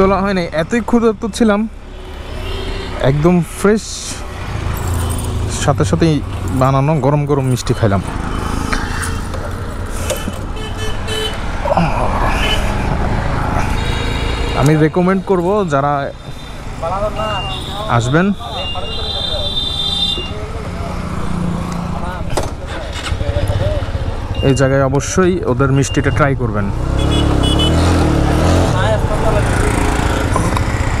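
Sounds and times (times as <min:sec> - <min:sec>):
traffic rumble: 0:00.0 - 0:31.0
man speaking: 0:05.5 - 0:08.2, 0:14.6 - 0:16.2, 0:16.8 - 0:19.7.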